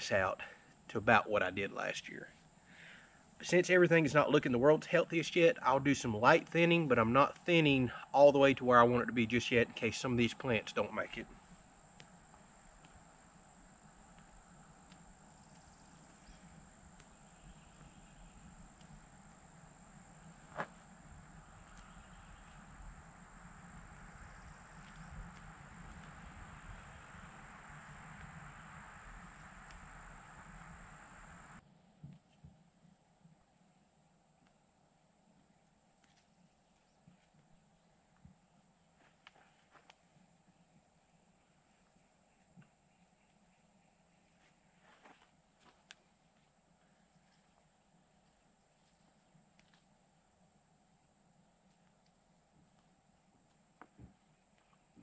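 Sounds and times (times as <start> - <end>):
high insect drone: 0.0 - 31.6
background hiss: 0.0 - 55.0.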